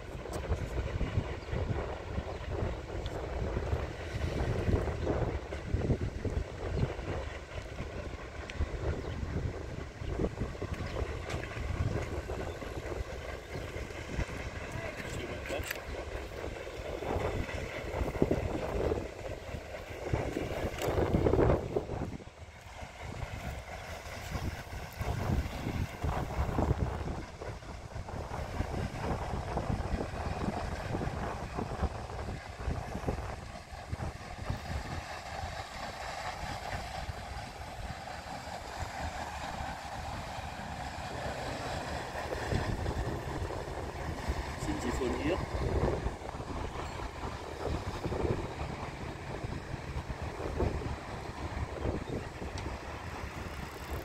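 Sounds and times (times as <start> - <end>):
paddle wheels churning water: 0.0 - 54.0
wind buffeting microphone: 0.0 - 54.0.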